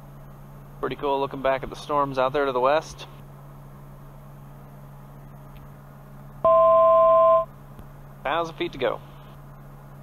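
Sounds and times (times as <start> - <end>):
two-pitch electronic alert tone: 6.5 - 7.5.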